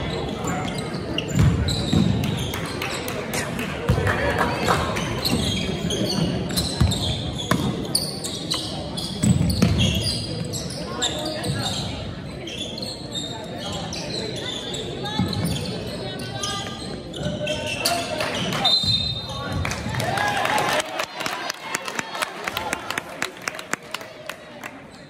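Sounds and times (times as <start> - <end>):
sneakers squeaking: 0.0 - 19.9
people talking: 0.0 - 25.0.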